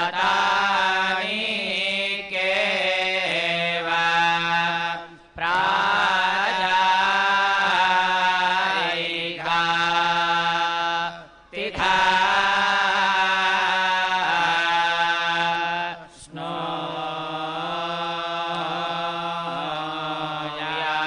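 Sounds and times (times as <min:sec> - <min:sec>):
men chanting hymns over microphones: 0:00.0 - 0:21.0.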